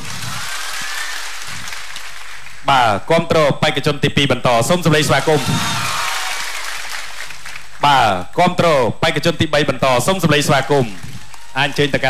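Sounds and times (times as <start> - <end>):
audience applauding: 0.0 - 2.6, 5.1 - 7.8
man speaking: 2.6 - 5.6, 7.8 - 11.0, 11.6 - 12.0.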